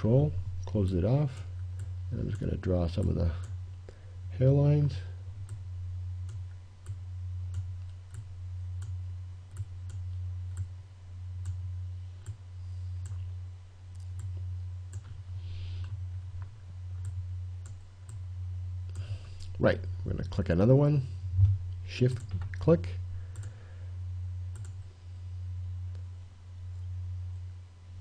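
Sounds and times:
steady low hum: 0.0 - 28.0
computer mouse clicking: 6.2 - 10.7, 23.3 - 23.6, 24.5 - 24.8.

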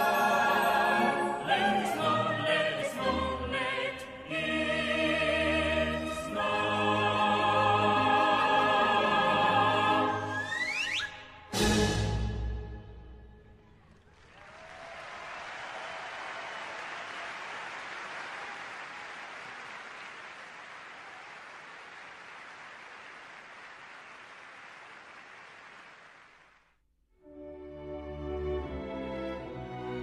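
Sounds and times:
choir final chord: 0.0 - 10.5
audience applauding: 13.8 - 26.7.

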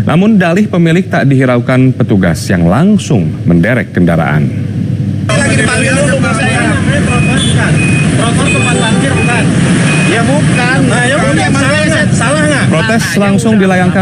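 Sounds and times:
short high beep: 7.1 - 10.3.

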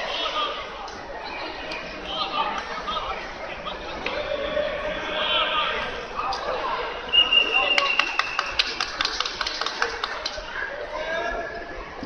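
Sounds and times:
hand clapping: 7.7 - 10.4.

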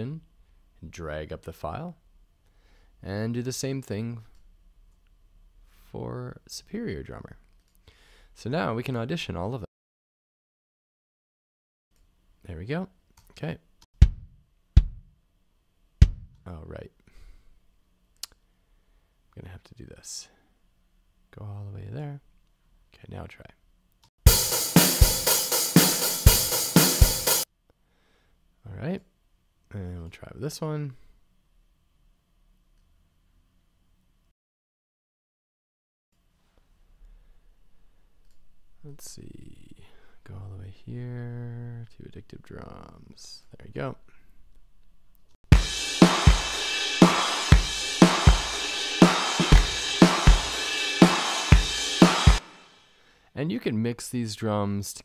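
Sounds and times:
kick and snare drum hits: 14.0 - 15.1, 16.0 - 16.4, 24.2 - 27.4, 45.5 - 52.6
hi-hat and cymbal wash: 24.3 - 27.5, 45.5 - 53.0.

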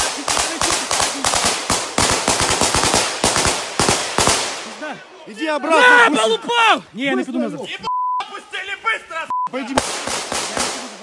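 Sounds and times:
rifle gunshots: 0.0 - 4.8, 9.8 - 11.0
man shouting: 4.8 - 9.8.

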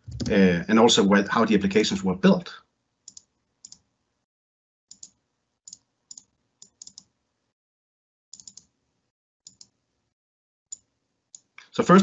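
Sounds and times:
computer mouse clicks: 3.1 - 3.9, 4.9 - 7.1, 8.3 - 8.7, 9.5 - 9.8.

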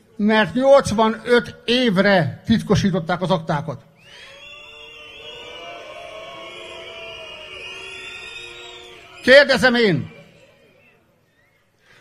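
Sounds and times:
crowd whistling: 3.9 - 12.0
crowd booing: 4.1 - 11.6.

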